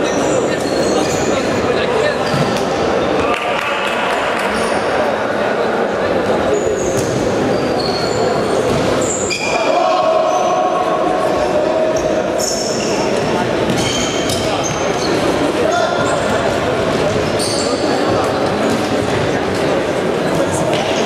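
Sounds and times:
sneakers squeaking on floor: 0.0s - 2.8s, 6.5s - 10.6s, 11.9s - 19.3s
players calling out: 6.6s - 18.2s.

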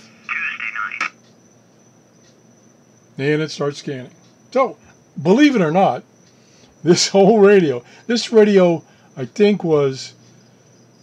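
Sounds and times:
tinny radio voice: 0.0s - 1.2s.

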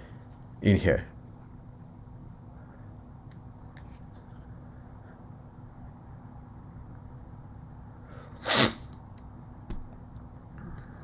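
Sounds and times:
faint steady hum: 0.0s - 11.0s
person sneezing: 8.4s - 8.9s.

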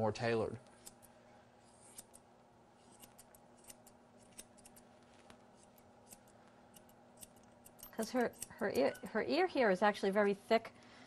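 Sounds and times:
grooming shears snipping hair: 0.6s - 9.2s.

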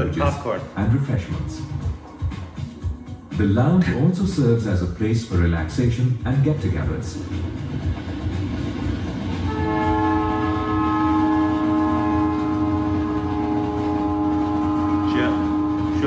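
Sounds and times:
train rumbling: 3.4s - 16.0s
train horn chord: 9.4s - 16.0s.

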